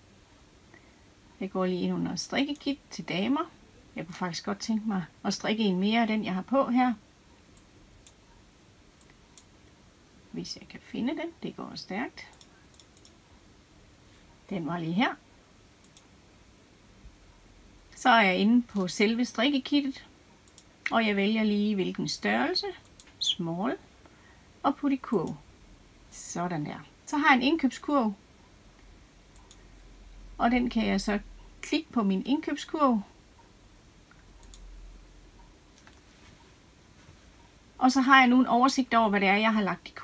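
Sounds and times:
computer mouse clicks: 9.0s - 9.5s, 12.2s - 13.2s, 15.8s - 16.1s, 20.4s - 20.7s, 22.8s - 23.2s, 29.3s - 29.6s, 34.1s - 34.7s.

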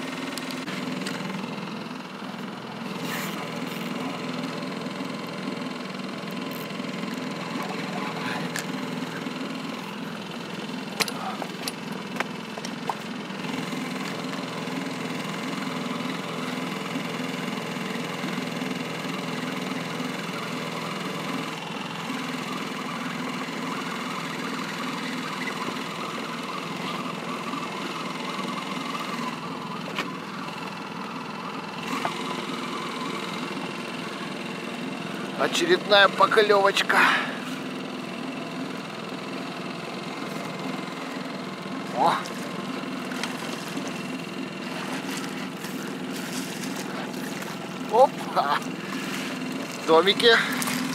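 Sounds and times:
outboard motor running: 0.0s - 50.9s.

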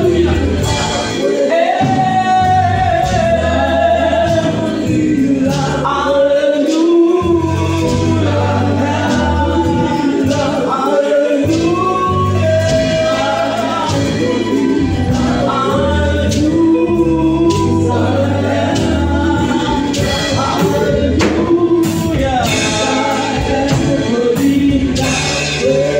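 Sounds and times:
congregation singing gospel song: 0.0s - 25.9s
low bass notes: 0.0s - 25.9s.

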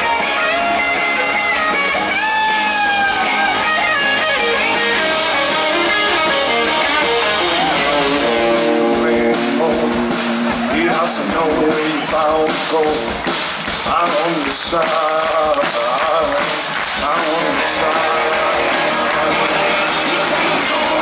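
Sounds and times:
electric guitars sliding notes: 0.0s - 21.0s
live rock band playing: 0.0s - 21.0s.

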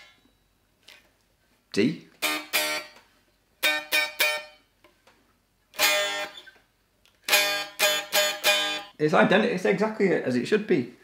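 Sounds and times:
electric guitar strumming chords: 2.2s - 3.0s, 3.6s - 4.6s, 5.8s - 6.4s, 7.3s - 8.9s.

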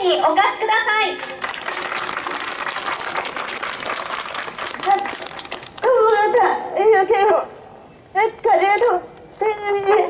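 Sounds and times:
crowd applauding: 1.2s - 5.9s.

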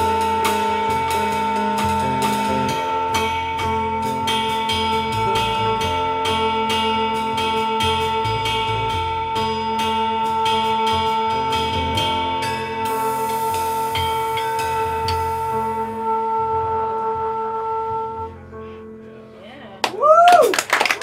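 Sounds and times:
drum or cymbal strikes: 0.0s - 16.1s
live jazz band playing: 0.0s - 17.5s.

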